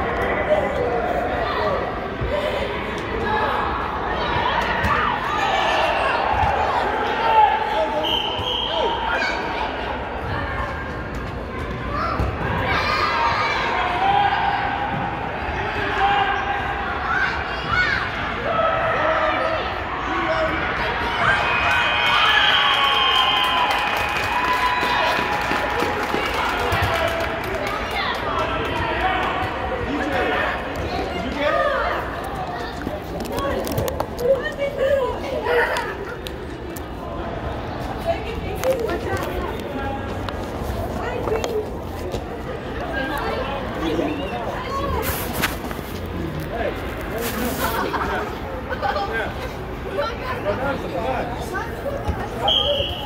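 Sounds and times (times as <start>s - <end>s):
background chatter of voices: 0.0s - 53.0s.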